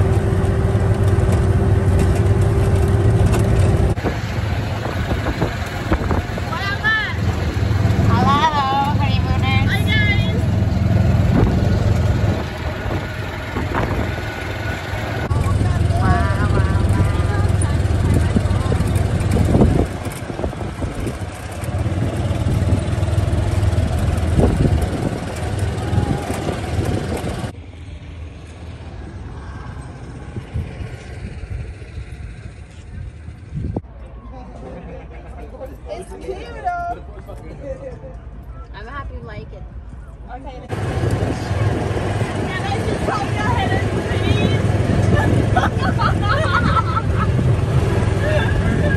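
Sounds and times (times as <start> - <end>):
wind buffeting microphone: 0.0 - 27.6, 28.9 - 33.8, 40.7 - 48.9
golf cart road noise: 0.0 - 48.9.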